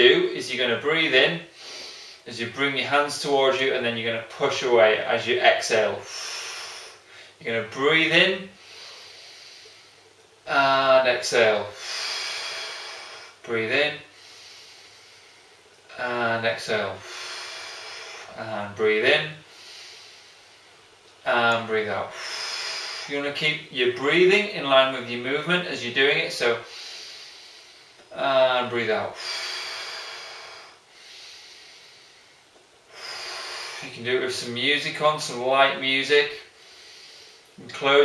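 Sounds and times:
man breathing deeply: 0:01.4 - 0:02.3, 0:06.0 - 0:07.4, 0:08.5 - 0:10.2, 0:11.7 - 0:13.4, 0:14.0 - 0:15.6, 0:17.0 - 0:18.4, 0:19.4 - 0:20.9, 0:22.1 - 0:23.1, 0:26.6 - 0:28.2, 0:29.1 - 0:33.9, 0:36.4 - 0:37.6
person breathing in deeply: 0:11.7 - 0:13.4, 0:14.1 - 0:15.6, 0:17.0 - 0:18.4, 0:29.1 - 0:33.9.

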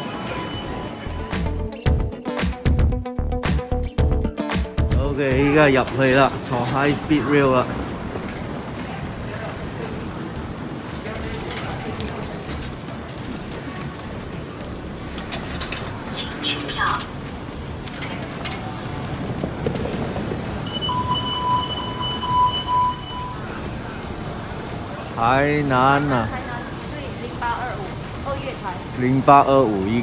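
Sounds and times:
murmur of voices: 0:05.1 - 0:20.7, 0:22.8 - 0:30.0
ticket gate clicks and clacks: 0:05.4 - 0:09.0, 0:10.8 - 0:14.0, 0:15.0 - 0:19.2
high electronic beep: 0:11.4 - 0:12.7, 0:15.0 - 0:15.8, 0:20.7 - 0:23.5
footsteps: 0:17.1 - 0:22.0.

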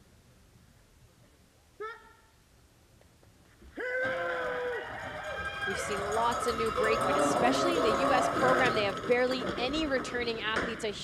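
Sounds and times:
rising shouted call: 0:03.8 - 0:08.6
several voices yelling: 0:05.7 - 0:08.9.

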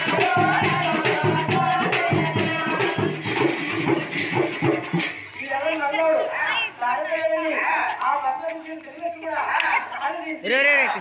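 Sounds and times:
frame drums beaten fast: 0:00.0 - 0:05.8
jingling bells: 0:00.0 - 0:07.3.

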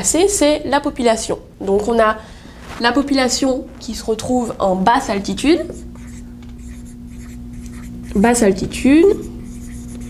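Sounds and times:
faint steady hum: 0:00.0 - 0:10.0
marker writing on whiteboard: 0:05.6 - 0:08.3, 0:09.0 - 0:10.0.

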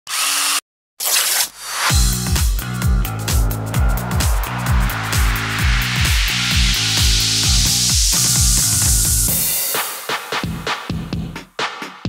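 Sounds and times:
intro music: 0:01.8 - 0:12.0
rising swell of noise: 0:03.3 - 0:09.3
harsh hissing noise bursts: 0:03.8 - 0:09.9.

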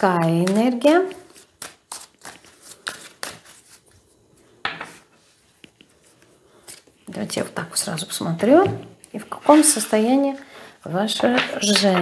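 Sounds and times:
cards being shuffled: 0:00.2 - 0:03.9.

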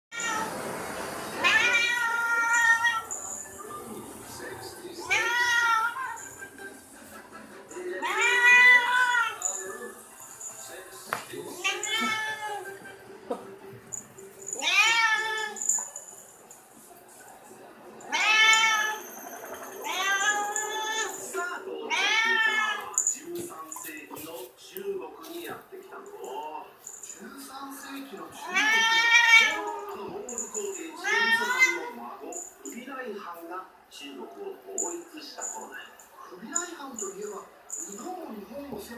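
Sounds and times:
cat meowing: 0:00.1 - 0:00.6, 0:01.4 - 0:03.2, 0:05.0 - 0:06.3, 0:08.0 - 0:09.5, 0:11.5 - 0:12.7, 0:14.6 - 0:15.7, 0:18.1 - 0:23.0, 0:28.3 - 0:32.0.

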